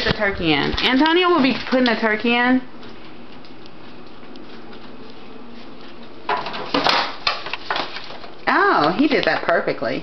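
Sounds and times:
room noise: 0:00.0 - 0:10.0
rustling clattering handling noise: 0:05.8 - 0:09.6.

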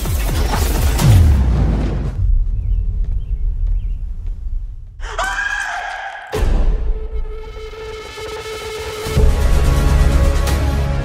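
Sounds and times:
booming hit with low rumble: 0:01.0 - 0:04.7.

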